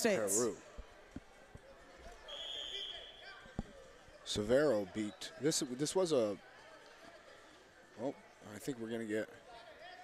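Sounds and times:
referee's whistle: 0:02.2 - 0:03.5.

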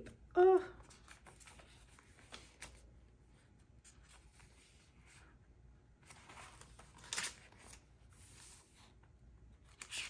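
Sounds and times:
paper page rustling: 0:00.8 - 0:03.0, 0:06.0 - 0:09.0, 0:09.6 - 0:10.0.

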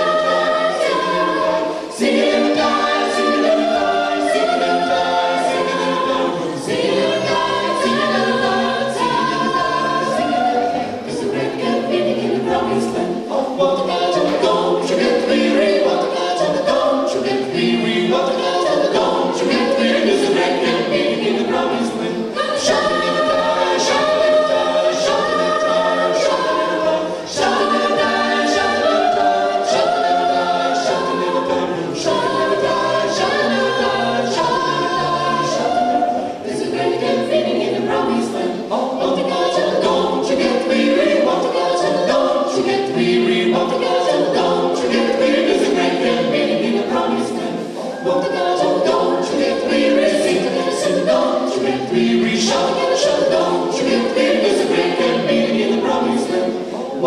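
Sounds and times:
vocal ensemble singing in harmony: 0:00.0 - 0:57.0.

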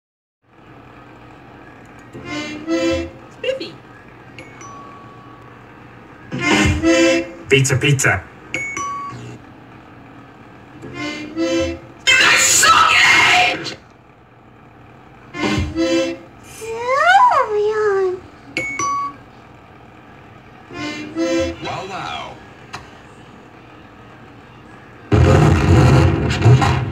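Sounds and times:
thin steady electronic tone: 0:03.9 - 0:07.3, 0:08.6 - 0:09.4
electronic chime notes: 0:04.4 - 0:05.5.

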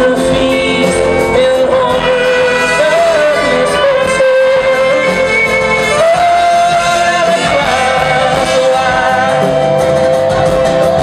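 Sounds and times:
acoustic guitar: 0:00.0 - 0:11.0
drums: 0:00.0 - 0:11.0
upright bass: 0:00.0 - 0:11.0.

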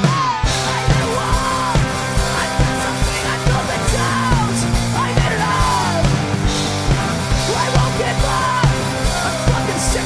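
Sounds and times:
person yelling vocals: 0:00.0 - 0:06.1
electric guitar: 0:00.0 - 0:10.0.

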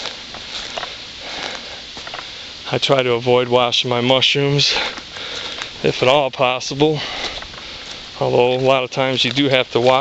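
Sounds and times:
footsteps on dry leaves: 0:00.0 - 0:10.0.

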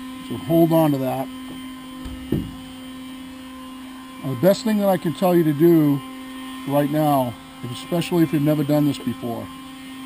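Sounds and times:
low hum: 0:00.3 - 0:03.2
short low bump: 0:02.0 - 0:02.7.

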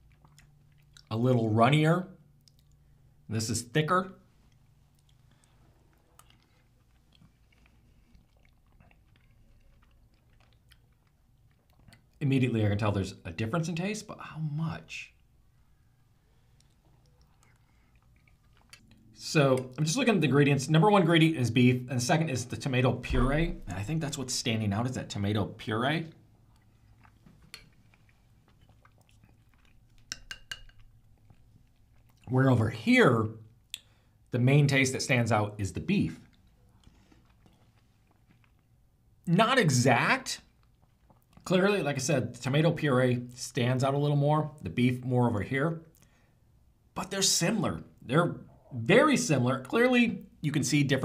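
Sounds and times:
faint chewing: 0:00.0 - 0:01.2, 0:02.3 - 0:03.2, 0:04.2 - 0:12.2, 0:15.1 - 0:19.9, 0:26.1 - 0:32.3, 0:36.2 - 0:39.0, 0:40.4 - 0:41.5, 0:45.8 - 0:46.3
metal spoon clinking bowl: 0:30.1 - 0:30.9.

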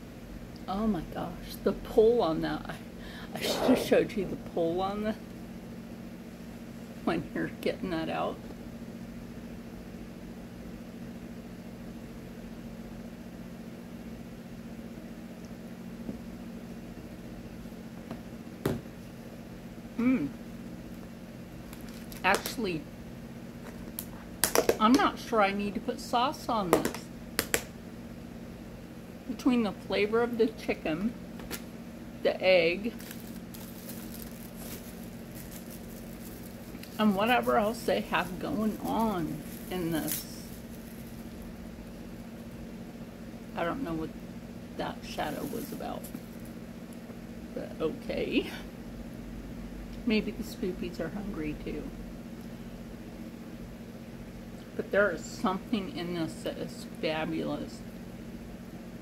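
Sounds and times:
low room hum: 0:00.0 - 0:59.0.

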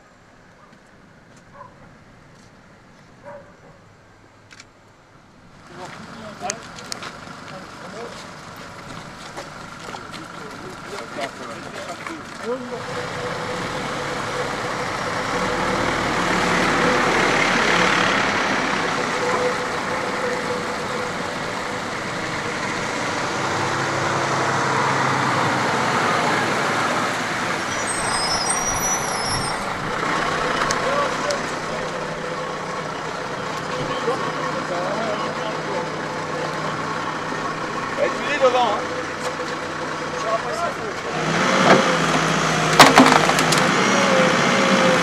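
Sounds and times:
heavy vehicle engines running: 0:05.5 - 0:45.0
indistinct voices: 0:09.0 - 0:45.0.

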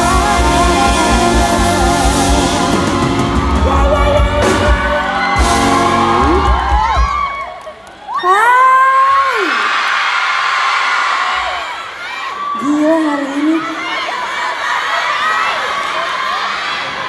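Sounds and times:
live band with singer: 0:00.0 - 0:09.6
audience cheering and screaming: 0:00.0 - 0:17.0.

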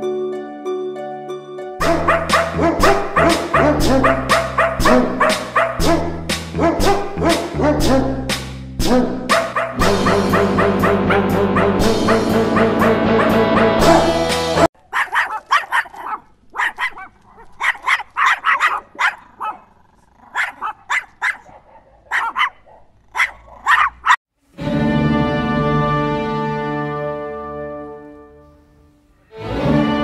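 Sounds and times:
music: 0:00.0 - 0:14.7, 0:24.5 - 0:30.0
dogs barking in short yaps: 0:14.9 - 0:19.6, 0:20.4 - 0:24.2.

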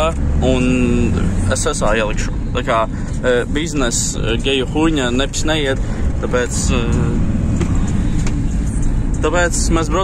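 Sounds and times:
tyres on road: 0:00.0 - 0:10.0
vehicle engine rumble: 0:00.0 - 0:10.0.

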